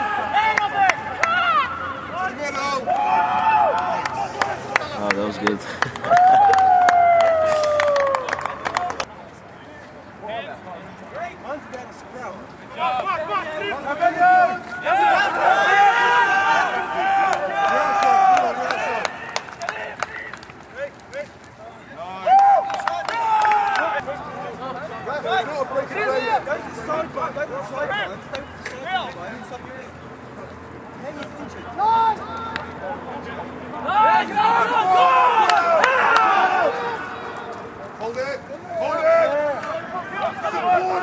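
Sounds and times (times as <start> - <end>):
crowd chatter: 7.5 - 41.0
men shouting: 12.8 - 20.3, 33.8 - 37.5, 38.7 - 41.0.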